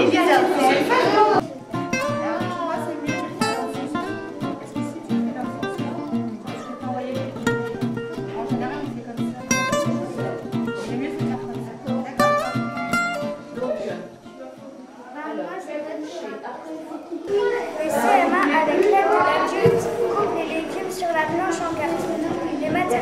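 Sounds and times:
acoustic guitar music: 0.0s - 15.0s, 17.2s - 23.0s.

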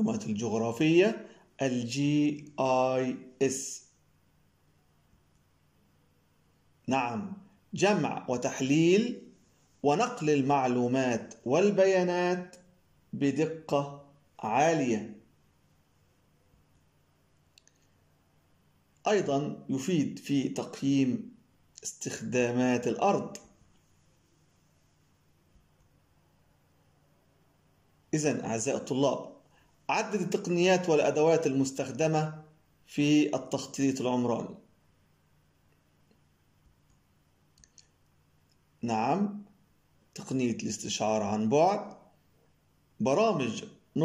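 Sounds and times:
man's voice: 0.0s - 3.9s, 6.9s - 9.2s, 9.8s - 12.6s, 13.2s - 15.2s, 19.1s - 21.2s, 21.8s - 23.5s, 28.2s - 29.3s, 29.9s - 34.6s, 40.2s - 42.0s, 43.0s - 44.0s
computer mouse clicks: 36.8s - 38.6s.

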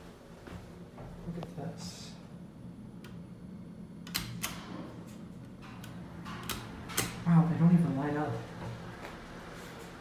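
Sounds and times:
steady low hum: 0.0s - 10.0s
elevator pushbuttons clicking: 4.0s - 4.6s, 5.8s - 7.2s.

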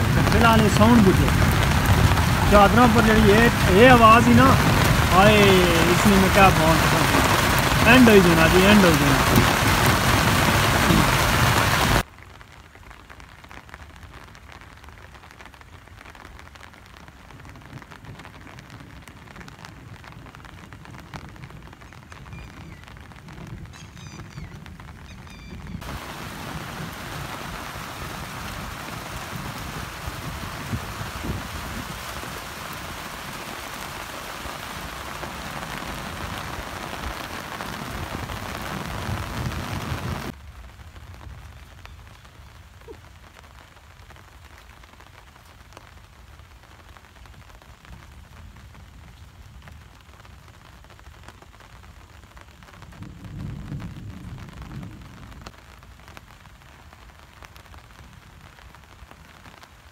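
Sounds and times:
heavy rain on a metal roof: 0.0s - 59.9s.

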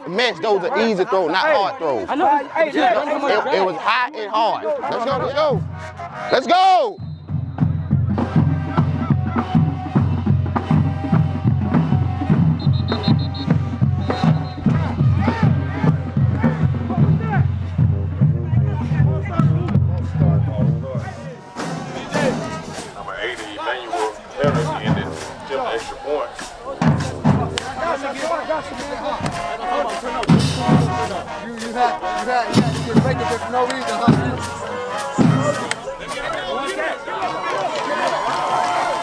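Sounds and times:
music with heavy bass and drums: 7.2s - 23.5s, 24.4s - 35.8s.

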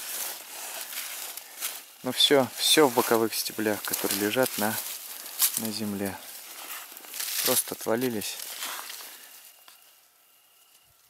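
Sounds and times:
dry plants rustling: 0.0s - 11.0s.

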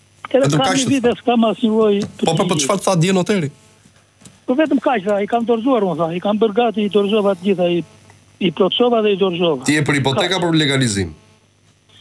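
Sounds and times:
person talking over phone line: 0.3s - 3.5s, 4.5s - 11.2s.

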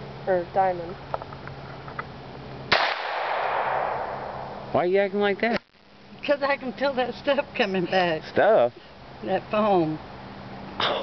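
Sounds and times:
pistol shot: 2.7s - 4.5s.

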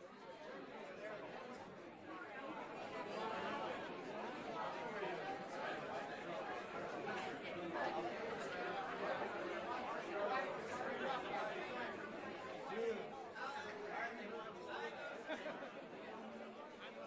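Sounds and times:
crowd chattering: 0.0s - 17.0s.

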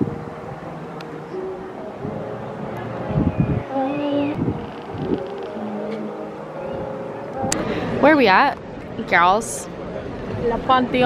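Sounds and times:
faint voices: 0.0s - 11.0s
traffic hum: 0.0s - 11.0s.

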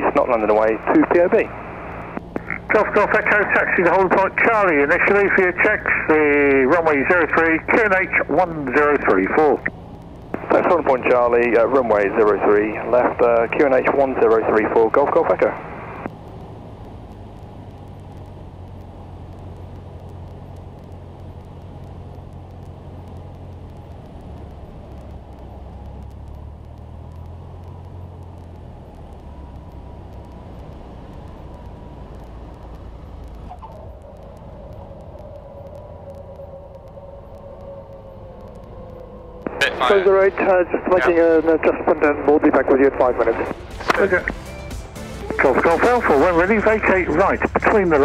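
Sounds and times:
propeller plane engine drone: 0.0s - 48.0s.

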